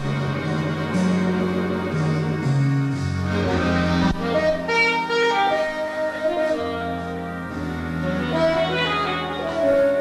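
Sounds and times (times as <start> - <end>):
jazz big band playing ballad: 0.0 - 10.0.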